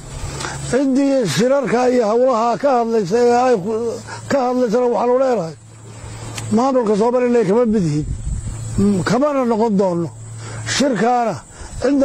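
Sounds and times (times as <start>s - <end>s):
steady low hum: 0.0s - 12.0s
man speaking: 0.7s - 5.6s, 6.5s - 12.0s
wind noise on microphone: 7.4s - 9.3s, 11.4s - 12.0s.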